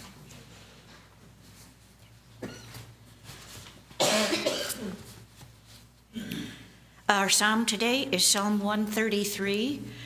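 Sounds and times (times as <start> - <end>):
person coughing: 2.4 - 2.8, 4.0 - 5.1, 6.1 - 6.7.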